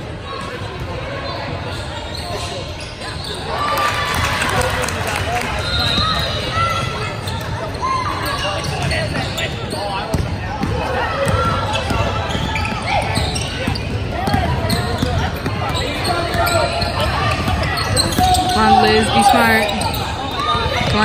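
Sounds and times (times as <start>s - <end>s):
sneakers squeaking: 0.2s - 3.7s, 5.5s - 21.0s
people calling out: 17.4s - 21.0s.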